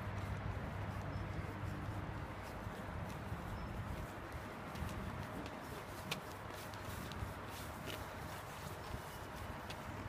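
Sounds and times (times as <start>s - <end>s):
running footsteps on concrete: 0.0s - 10.0s.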